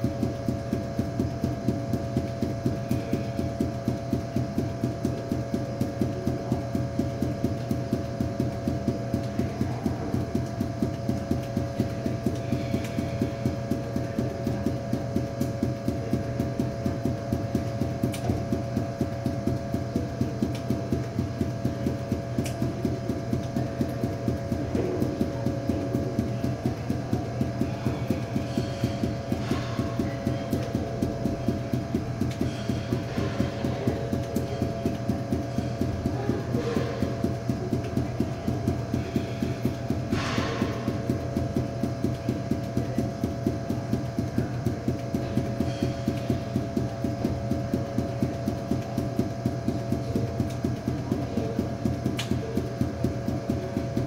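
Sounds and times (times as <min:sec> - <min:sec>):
balls bouncing on hard floor: 0:00.0 - 0:54.0
steady hum: 0:00.0 - 0:54.0.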